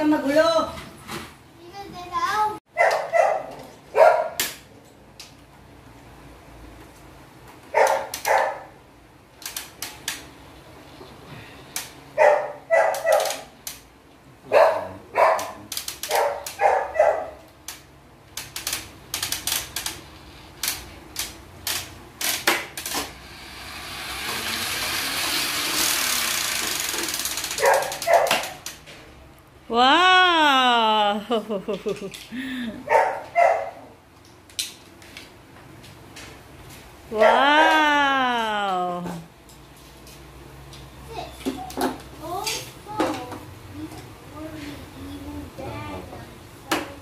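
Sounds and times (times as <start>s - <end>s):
dog barking: 2.8s - 4.4s, 7.7s - 8.8s, 12.2s - 13.4s, 14.5s - 17.4s, 27.6s - 28.5s, 32.9s - 33.9s, 37.2s - 37.4s
plastic toy parts clicking: 9.4s - 10.3s, 15.7s - 16.6s, 17.7s - 23.1s, 24.9s - 28.8s.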